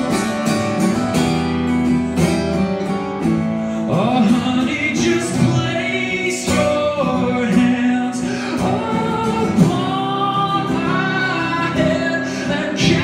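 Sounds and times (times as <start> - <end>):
strummed acoustic guitar: 0.0 - 13.0
man singing: 3.7 - 13.0.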